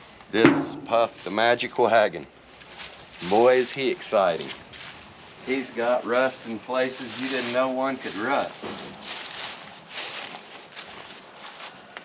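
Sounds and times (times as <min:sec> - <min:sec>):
rustling of person moving: 0:02.4 - 0:12.0.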